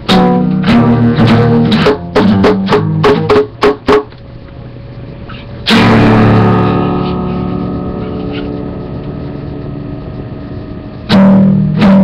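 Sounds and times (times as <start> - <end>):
distorted guitar chord ringing: 0.0 - 4.1, 5.6 - 12.0.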